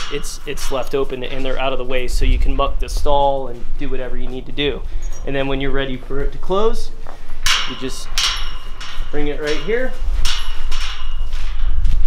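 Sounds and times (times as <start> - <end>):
metal gate clanking shut: 0.0 - 1.8, 7.4 - 11.9
chain rattling: 0.0 - 2.4, 7.3 - 12.0
low rumble: 0.0 - 12.0.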